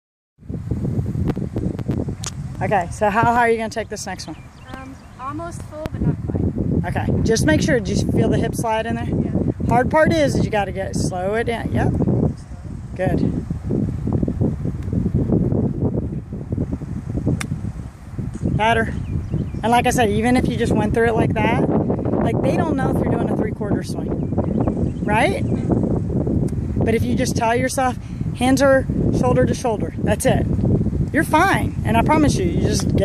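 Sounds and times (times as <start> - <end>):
wind buffeting microphone: 0.4 - 33.0
golf club striking ball: 17.2 - 17.7.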